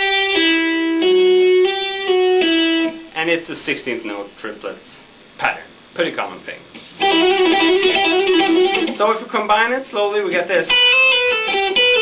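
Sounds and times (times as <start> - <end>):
clean electric guitar phrase: 7.0 - 9.0.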